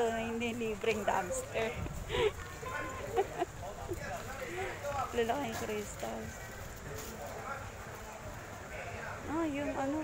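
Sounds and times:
faint voices: 0.0s - 10.0s
outdoor background noise: 0.0s - 10.0s.

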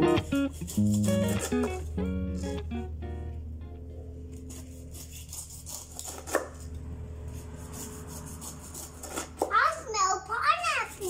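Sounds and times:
low hum: 0.0s - 8.8s
knife cutting pineapple skin: 0.4s - 1.9s, 4.4s - 9.6s.

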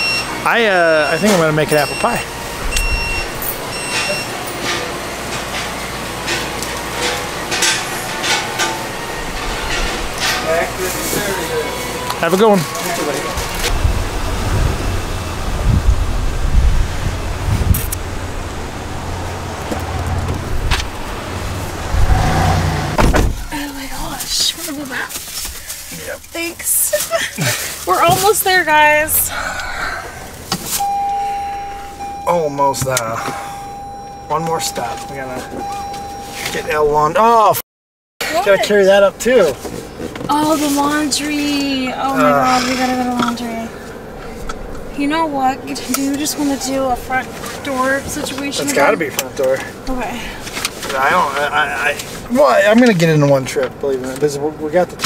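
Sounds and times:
short electronic beeps: 0.0s - 0.4s, 1.0s - 4.4s, 30.8s - 32.5s, 33.4s - 36.9s
steady single-pitch tone: 1.0s - 4.5s, 30.8s - 36.8s
rustling and clatter of bags: 23.4s - 28.5s
person exclaiming: 42.1s - 42.8s.

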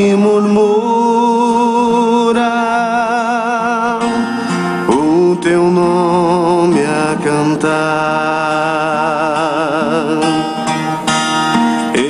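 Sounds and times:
acoustic guitar: 0.0s - 12.0s
group singing a hymn: 4.8s - 12.0s.

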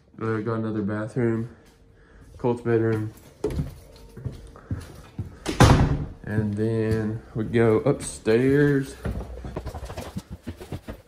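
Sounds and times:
footsteps on tile floor: 0.3s - 11.0s.

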